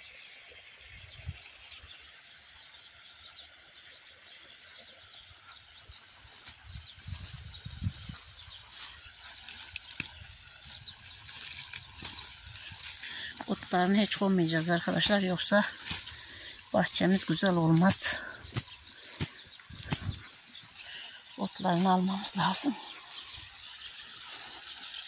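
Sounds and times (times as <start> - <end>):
faint bird chirps: 0.8 - 25.0.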